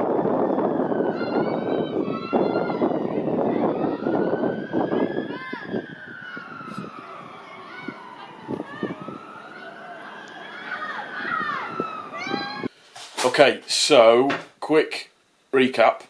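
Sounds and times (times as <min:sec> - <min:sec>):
siren wailing: 0:00.0 - 0:12.7
outdoor noise rushing: 0:00.0 - 0:13.3.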